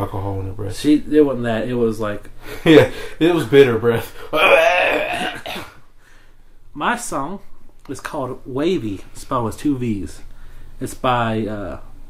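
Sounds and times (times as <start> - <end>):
person rasping throaty sound: 4.3 - 5.7.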